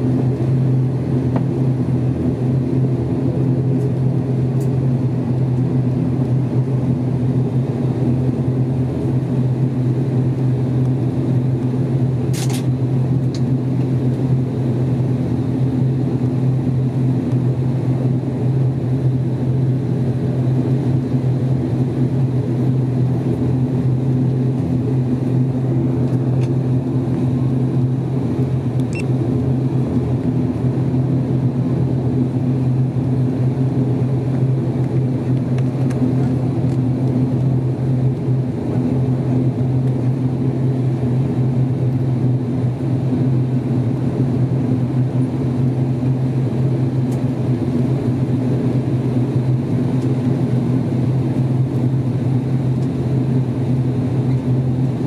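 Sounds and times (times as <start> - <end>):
turboprop engines droning: 0.0 - 55.0.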